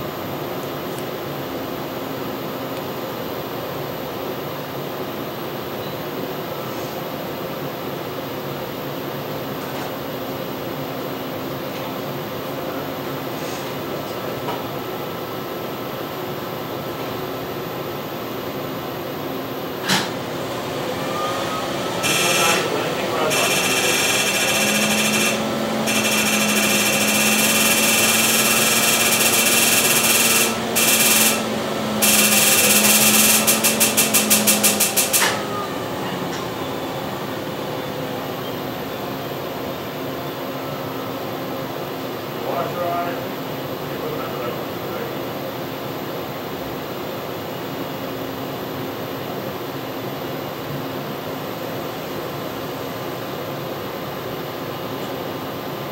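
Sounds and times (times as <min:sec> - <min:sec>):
steady low hum: 0:14.8 - 0:45.4
laser rapid pulsing buzz: 0:21.5 - 0:35.6.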